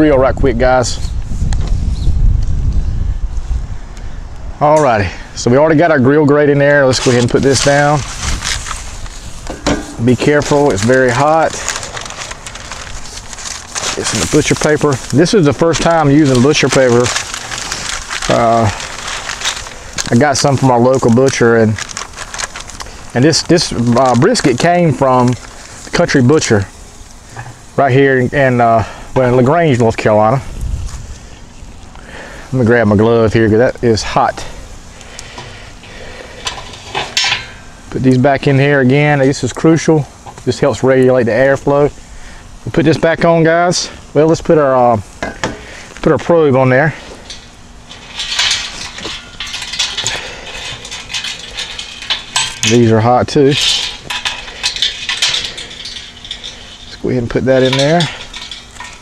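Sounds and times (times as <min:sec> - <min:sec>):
paper rustling and crinkling: 0:06.4 - 0:26.7, 0:45.5 - 0:59.0
metal rods clinking and scraping: 0:06.5 - 0:26.7, 0:33.1 - 0:38.7, 0:45.2 - 0:59.0
sharp paper crackle: 0:06.7 - 0:27.2, 0:45.6 - 0:59.0.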